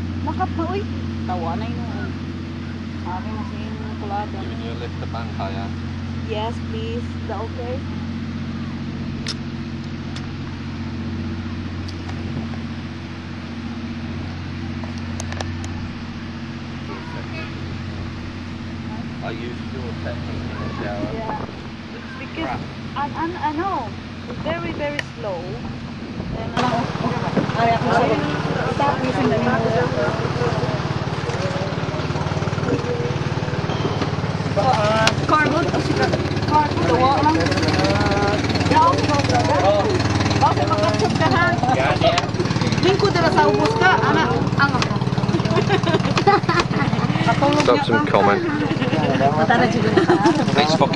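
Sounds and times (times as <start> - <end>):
engine running steadily: 0.0 - 50.9
voices talking: 0.0 - 50.9.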